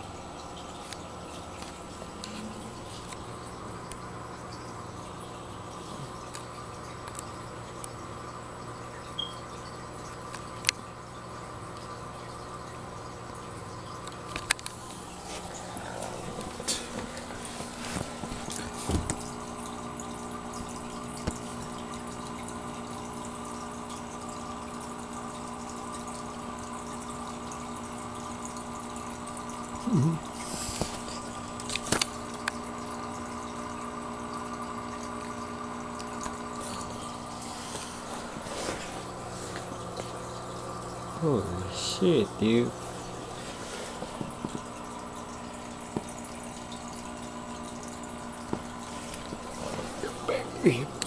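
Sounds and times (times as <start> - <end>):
aquarium pump hum: 0.0 - 51.0
water trickling and bubbling: 0.0 - 51.0.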